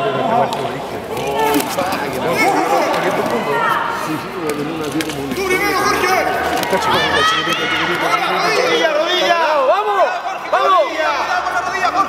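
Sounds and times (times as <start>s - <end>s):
spectators shouting: 5.4s - 12.0s.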